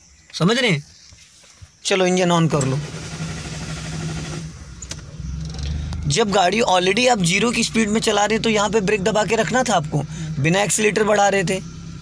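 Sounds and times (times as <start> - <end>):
car starter motor cranking: 2.4 - 12.0
sharp click: 4.8 - 6.0.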